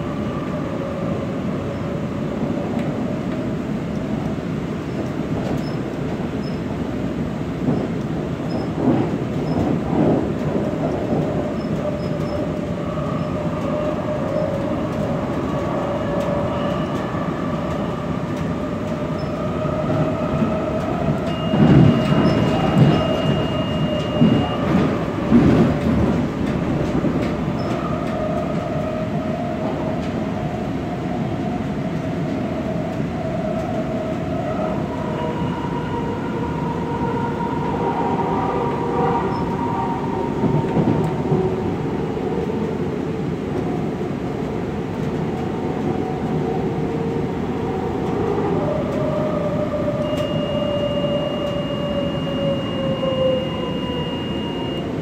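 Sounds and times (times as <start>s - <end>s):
rail car rumbling on track: 0.0s - 55.0s
high wheel squeal: 21.3s - 24.7s, 50.0s - 55.0s.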